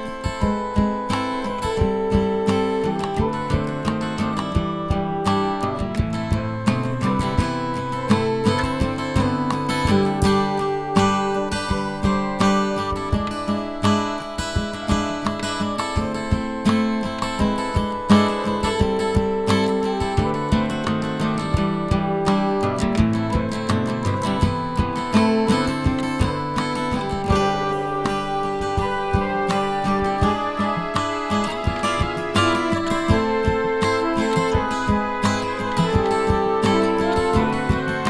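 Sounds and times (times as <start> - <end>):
acoustic guitar music: 0.0 - 38.0.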